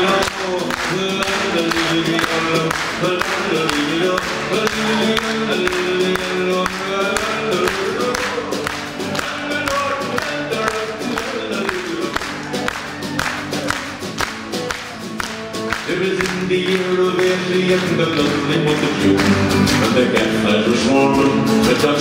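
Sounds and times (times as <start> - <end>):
acoustic guitar: 0.0 - 22.0
electric guitar: 0.0 - 22.0
keyboard: 0.0 - 22.0.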